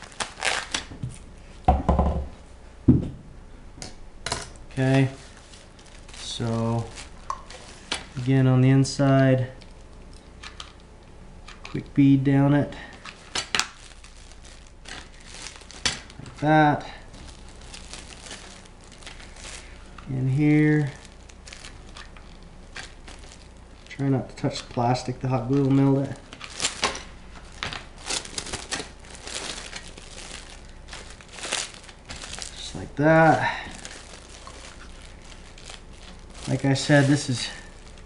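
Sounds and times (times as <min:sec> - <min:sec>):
plastic stretch wrap crinkling: 0:00.0 - 0:01.6, 0:04.7 - 0:10.8, 0:11.5 - 0:38.0.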